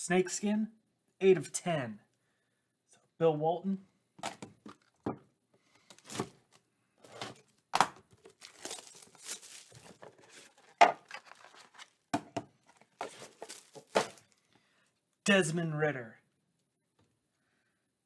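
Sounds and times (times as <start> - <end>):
plastic wrap crinkling: 5.9 - 12.0, 12.6 - 14.4.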